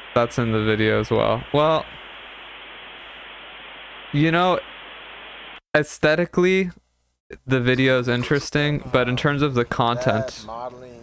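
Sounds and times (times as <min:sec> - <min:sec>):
static hiss: 0:00.0 - 0:05.7.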